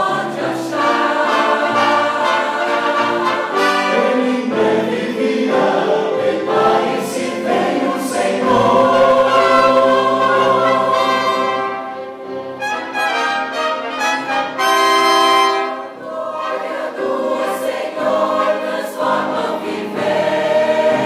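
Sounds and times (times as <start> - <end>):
male vocal quartet singing: 0.0 - 11.9, 15.5 - 21.0
church choir singing: 0.0 - 21.0.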